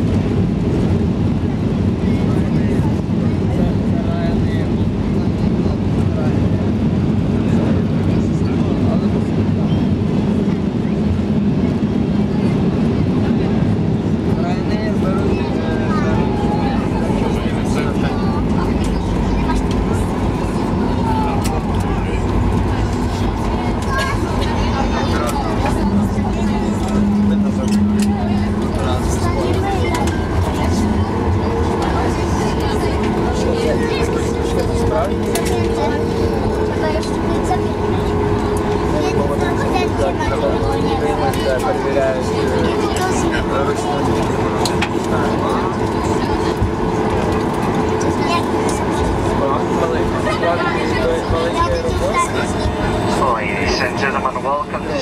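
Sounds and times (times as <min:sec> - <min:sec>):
jet engines rumbling: 0:00.0 - 0:55.0.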